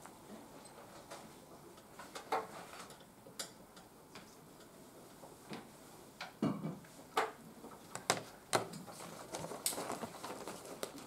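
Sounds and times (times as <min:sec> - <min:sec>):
pens and papers clicking on desks: 0:07.2 - 0:11.0.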